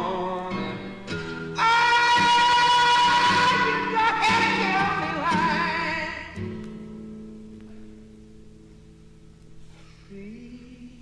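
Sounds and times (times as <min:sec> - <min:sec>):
acoustic guitar chord ringing: 0:00.0 - 0:10.8.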